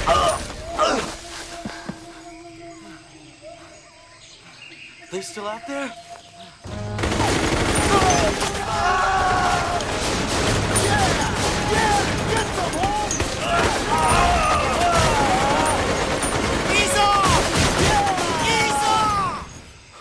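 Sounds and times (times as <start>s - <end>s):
people shouting: 0.0s - 2.0s, 7.0s - 19.6s
rapid gunfire: 6.8s - 19.1s.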